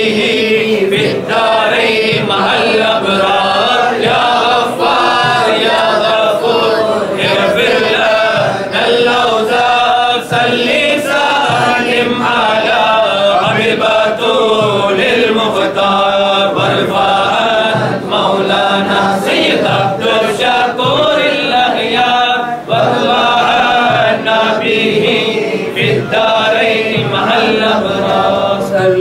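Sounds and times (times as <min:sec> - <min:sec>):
men chanting in unison: 0:00.0 - 0:29.0.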